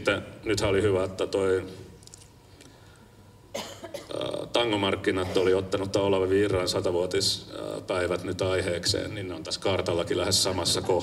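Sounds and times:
person coughing: 0:03.5 - 0:04.5, 0:05.2 - 0:05.7.

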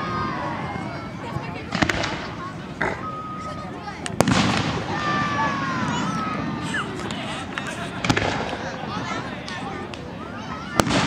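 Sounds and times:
fireworks bangs: 0:01.7 - 0:02.4, 0:04.1 - 0:07.2, 0:07.8 - 0:08.8, 0:10.7 - 0:11.0.

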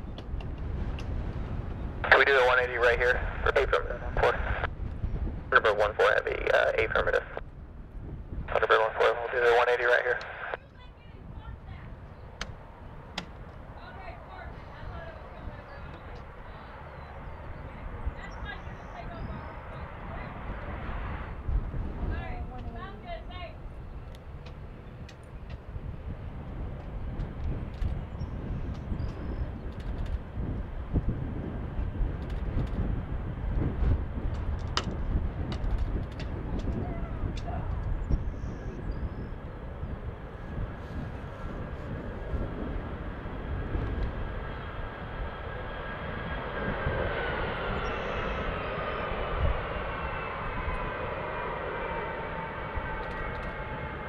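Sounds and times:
jet engine whine: 0:00.0 - 0:54.0
jet engines low rumble: 0:00.0 - 0:54.0.

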